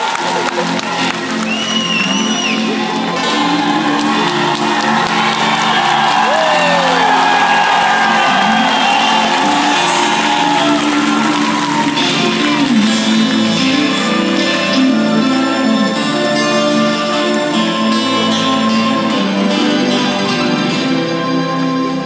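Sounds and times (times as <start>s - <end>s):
crowd cheering: 0.0s - 21.8s
whistle from crowd: 1.4s - 2.8s, 5.6s - 11.0s.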